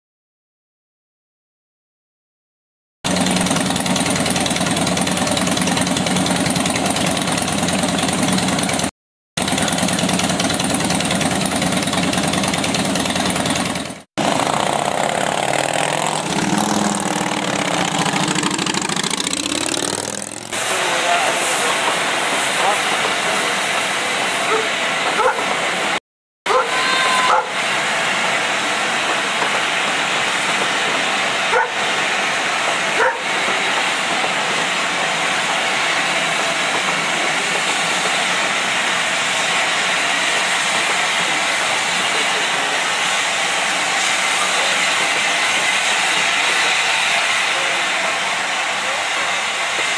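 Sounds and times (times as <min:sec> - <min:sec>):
motorcycle engines revving: 0:14.2 - 0:20.6.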